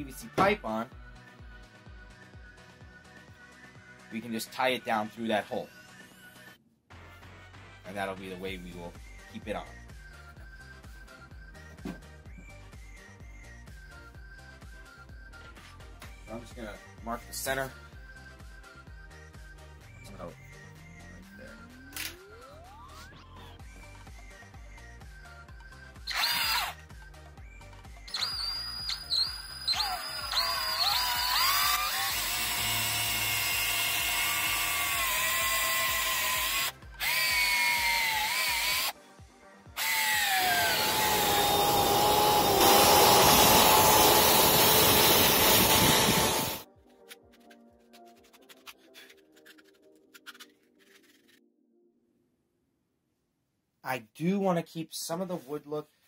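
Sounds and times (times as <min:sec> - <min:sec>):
cordless drill boring wood: 0:26.0 - 0:26.8, 0:28.1 - 0:39.0, 0:39.8 - 0:46.6.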